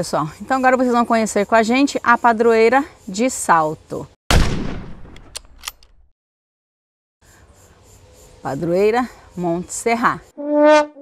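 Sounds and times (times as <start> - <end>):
loud bang: 4.3 - 5.3
sharp clicks: 5.1 - 6.0.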